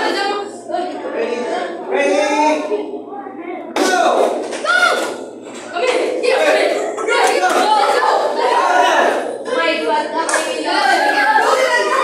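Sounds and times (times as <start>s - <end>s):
children shouting and cheering: 4.6s - 12.0s.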